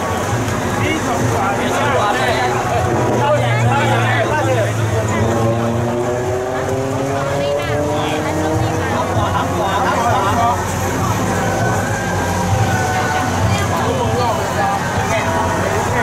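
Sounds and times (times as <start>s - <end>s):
low engine-like hum: 0.0s - 16.0s
people talking: 0.0s - 16.0s.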